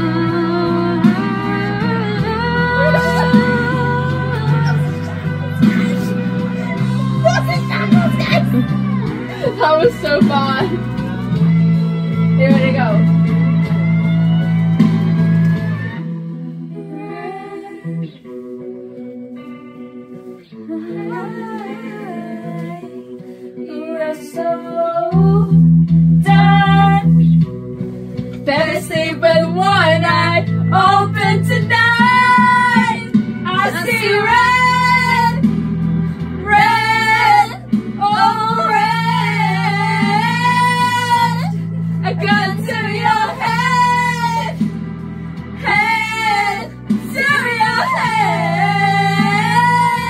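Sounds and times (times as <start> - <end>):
woman singing wordless melody: 0.0 - 8.6, 16.7 - 18.2, 20.6 - 25.6, 26.2 - 27.2, 28.5 - 35.4, 36.4 - 44.6, 45.6 - 50.0
karaoke backing track: 0.0 - 50.0.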